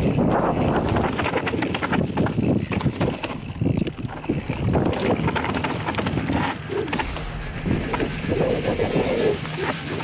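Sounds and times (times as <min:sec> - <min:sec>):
bike knocks and rattles: 0:00.0 - 0:10.0
tyres rolling over loose dirt: 0:00.0 - 0:10.0
wind buffeting microphone: 0:00.0 - 0:10.0.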